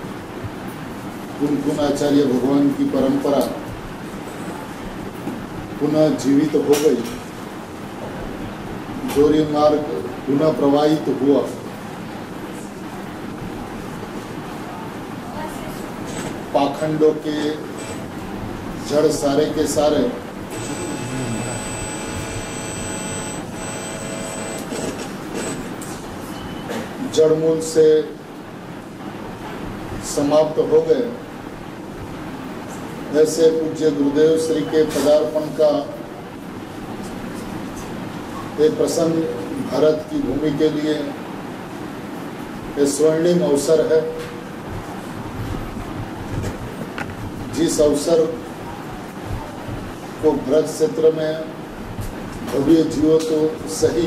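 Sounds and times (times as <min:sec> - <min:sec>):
steady background hiss: 0:00.0 - 0:54.0
steady mechanical drone: 0:06.7 - 0:26.3
thin high whine: 0:20.4 - 0:26.8.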